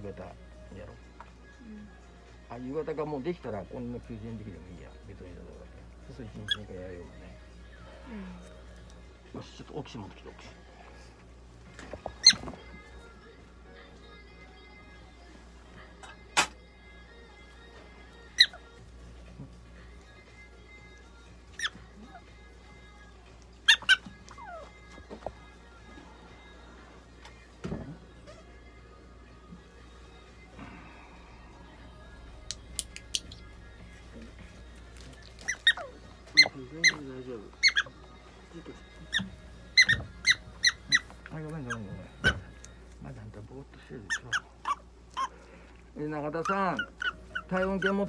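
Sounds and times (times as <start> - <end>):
prairie dog squeaking: 6.3 - 6.8, 12.0 - 12.7, 18.2 - 18.9, 21.4 - 22.6, 23.5 - 25.6, 34.2 - 42.7, 44.0 - 45.4, 46.3 - 48.0.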